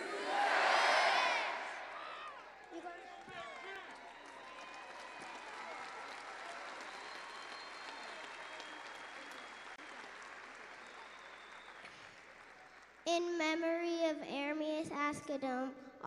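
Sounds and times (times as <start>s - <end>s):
crowd applauding and cheering: 0.0s - 13.0s.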